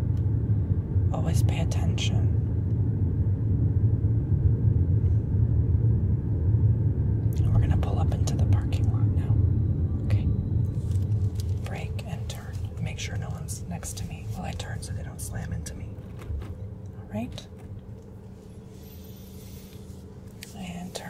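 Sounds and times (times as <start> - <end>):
vehicle driving slowly: 0.0 - 21.0.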